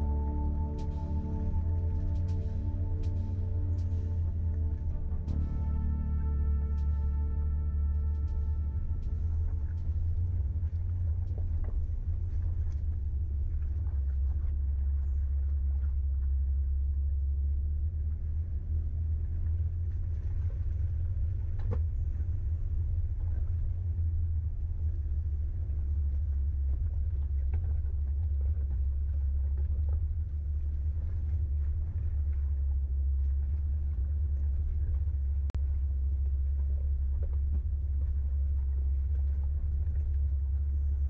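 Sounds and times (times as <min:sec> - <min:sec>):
off-road vehicle rumbling: 0:00.0 - 0:41.0.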